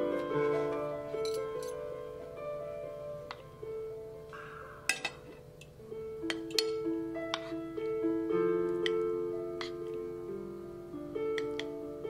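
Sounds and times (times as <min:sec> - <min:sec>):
piano music: 0:00.0 - 0:12.0
metal spoon clinking on ceramic: 0:06.3 - 0:06.8.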